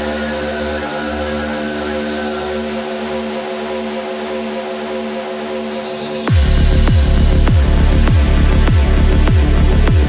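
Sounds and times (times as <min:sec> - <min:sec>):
low bass: 0:00.0 - 0:10.0
sustained synth pad chord: 0:00.0 - 0:10.0.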